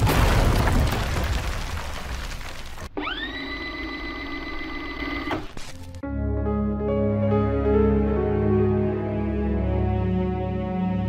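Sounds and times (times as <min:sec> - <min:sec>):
tape rewinding motor whine: 0:03.0 - 0:05.6.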